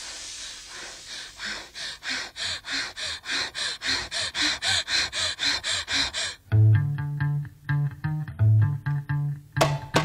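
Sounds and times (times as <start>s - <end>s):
rhythmic breathy panting: 0.0s - 6.6s.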